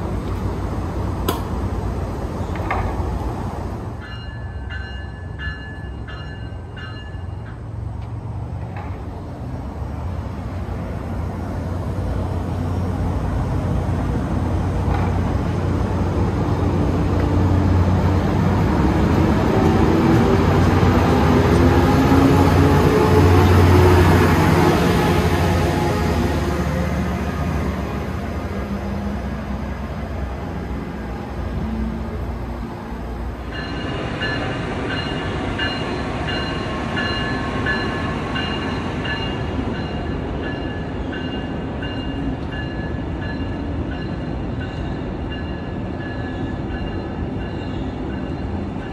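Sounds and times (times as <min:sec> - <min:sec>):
train engine rumble: 0:00.0 - 0:48.9
train wheel noise: 0:00.0 - 0:48.9.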